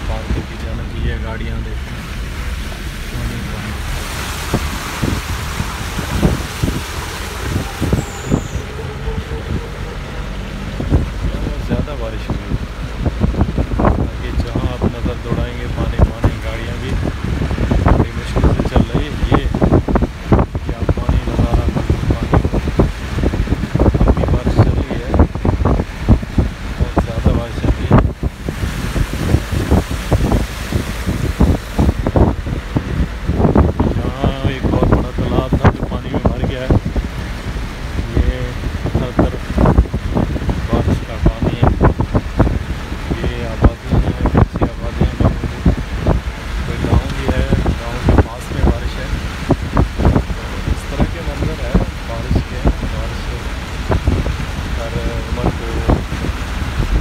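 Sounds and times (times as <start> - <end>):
vehicle driving through heavy rain: 0.0 - 57.0
wind buffeting microphone: 0.0 - 57.0.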